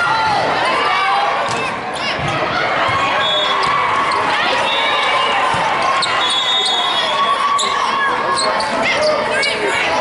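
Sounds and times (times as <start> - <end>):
babble of voices: 0.0 - 10.0.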